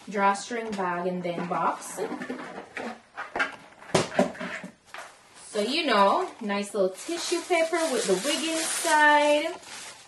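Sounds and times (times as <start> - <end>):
cardboard rustling and scraping: 7.1 - 10.0.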